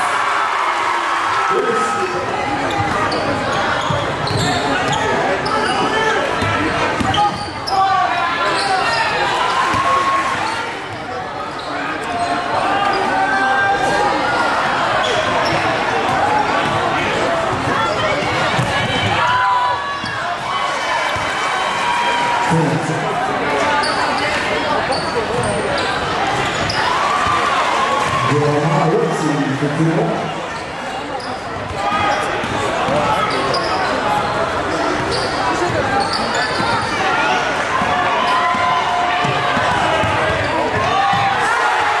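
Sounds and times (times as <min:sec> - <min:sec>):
voices and shouts of crowd: 0:00.0 - 0:42.0
sneakers squeaking: 0:02.2 - 0:21.3, 0:23.6 - 0:28.2, 0:30.5 - 0:41.4
basketball bouncing on court: 0:17.5 - 0:19.2, 0:37.8 - 0:41.3.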